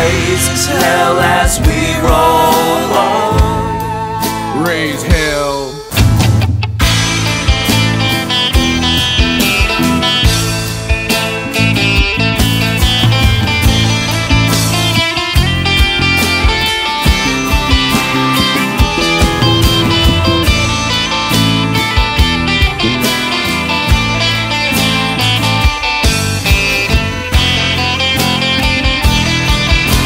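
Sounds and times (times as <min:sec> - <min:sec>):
steady beat: 0:00.0 - 0:30.0
plucked strings: 0:05.9 - 0:30.0.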